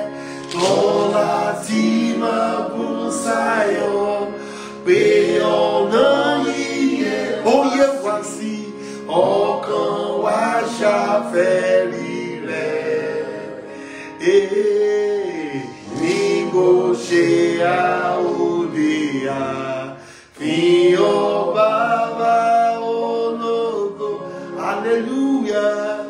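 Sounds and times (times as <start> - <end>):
man singing a hymn: 0.0 - 26.0.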